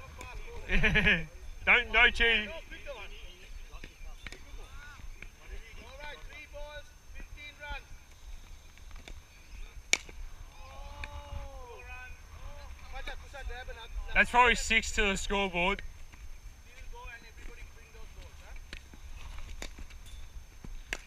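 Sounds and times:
sharp crack: 9.9 - 10.3.

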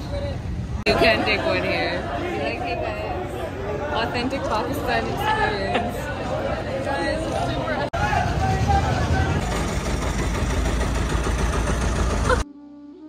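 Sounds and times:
people talking: 0.0 - 9.5
boat engine rumbling: 6.5 - 12.4
soft flute music: 12.4 - 13.0.

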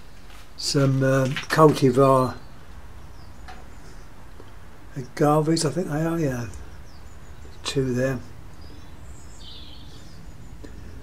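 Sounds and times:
low background rumble: 2.3 - 11.0.

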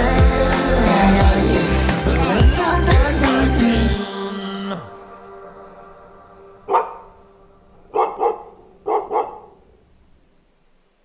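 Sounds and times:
dog barking: 6.7 - 7.2, 7.9 - 9.7.

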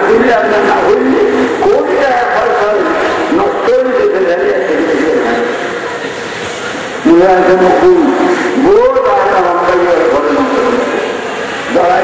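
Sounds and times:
man chanting a sermon: 0.0 - 5.5, 7.0 - 11.0.

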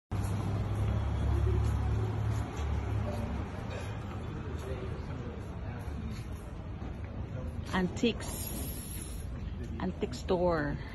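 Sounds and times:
street traffic rumble: 0.1 - 10.9.

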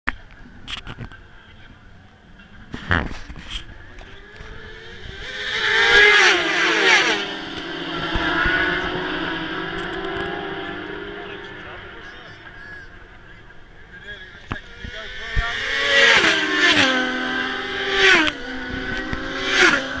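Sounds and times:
racing motorcycles passing: 3.1 - 20.0.

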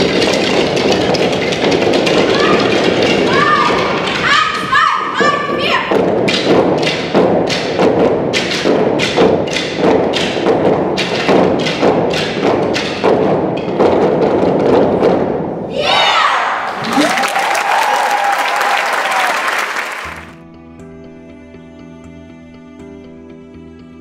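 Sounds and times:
wooden sticks knocking in rhythm: 0.0 - 15.7.

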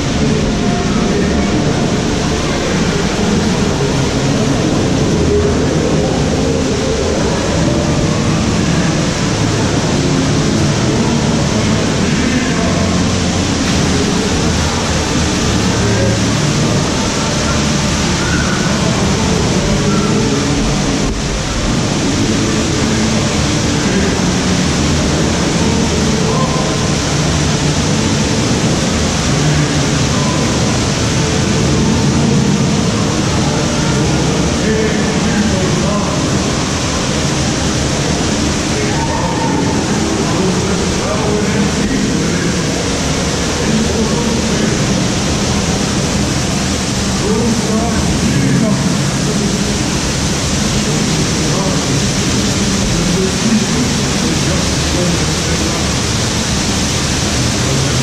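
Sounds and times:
faint voices: 0.0 - 58.0
water rushing: 0.0 - 58.0.

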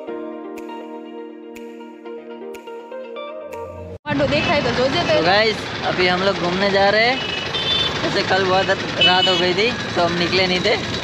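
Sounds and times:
vehicle running noise: 3.8 - 11.0.

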